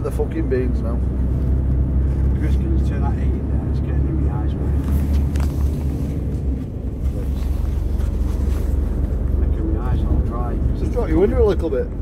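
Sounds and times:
diesel lorry engine rumble: 0.0 - 12.0.

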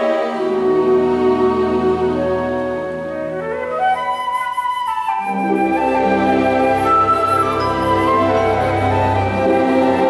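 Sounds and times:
strings sustained low chords: 0.0 - 3.6
low orchestral accompaniment: 0.0 - 10.0
woodwind line: 0.0 - 10.0.

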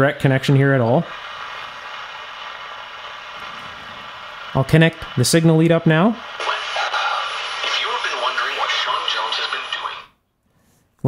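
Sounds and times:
radio static hiss: 0.0 - 10.2.

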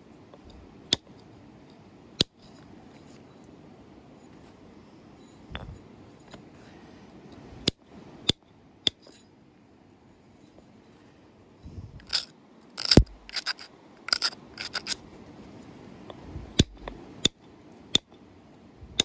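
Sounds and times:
antler clicking on stone: 12.0 - 15.0
stone snapping: 12.0 - 15.0
antler scraping stone: 12.0 - 15.1.

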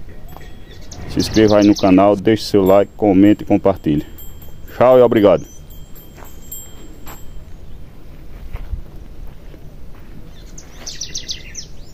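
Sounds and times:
low rumbling noise: 0.0 - 4.7
bird chirping: 0.0 - 7.9.

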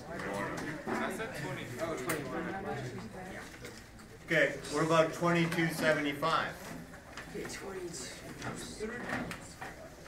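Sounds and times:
indistinct background talk: 0.0 - 10.0.

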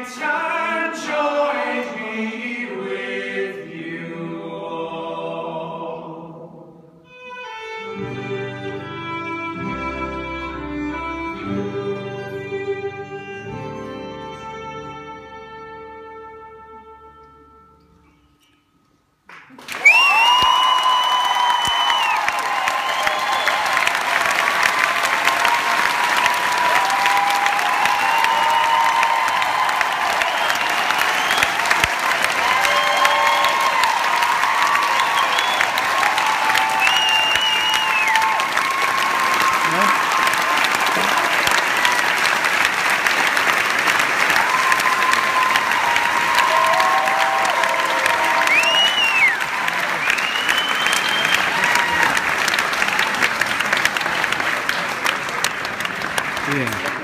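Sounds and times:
audience clapping: 19.3 - 57.0
cheers and whoops: 19.6 - 42.4, 44.2 - 53.5.

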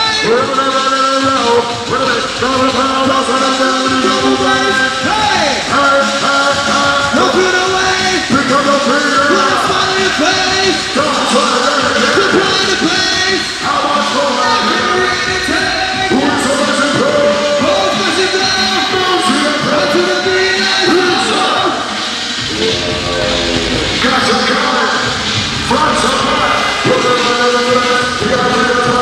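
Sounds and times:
loud live music: 0.0 - 29.0
person vocalising into microphone: 22.4 - 24.4.

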